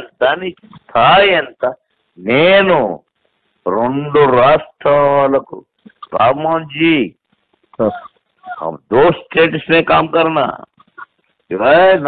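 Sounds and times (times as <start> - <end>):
man talking over telephone: 0.0 - 3.0, 3.7 - 7.2, 7.8 - 10.8, 11.5 - 12.0.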